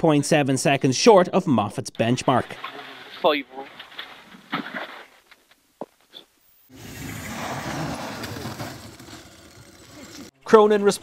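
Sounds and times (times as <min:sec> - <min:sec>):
car engine and spinning tyres: 0:06.7 - 0:10.3.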